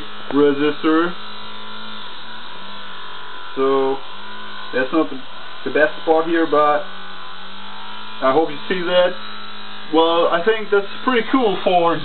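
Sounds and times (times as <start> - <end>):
electric motor buzzing: 0.0 - 12.0.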